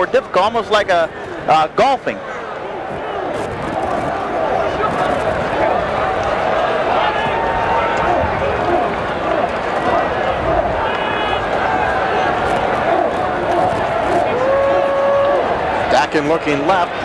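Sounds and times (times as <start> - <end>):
murmur of crowd voices: 0.0 - 17.0.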